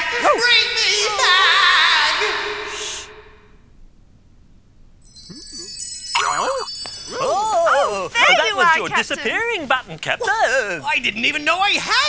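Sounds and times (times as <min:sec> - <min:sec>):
magic sparkle chime: 0:05.0 - 0:07.7
voice exclamation: 0:05.3 - 0:10.4.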